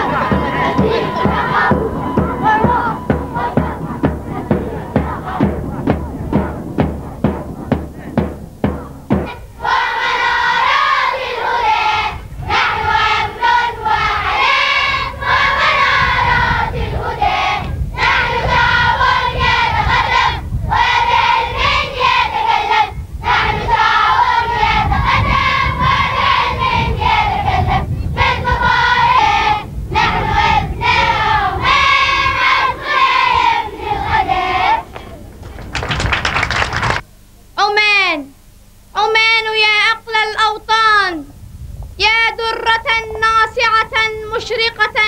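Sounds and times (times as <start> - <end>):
women and girls singing in unison: 0.0 - 35.4
singers breathing: 3.9 - 8.4.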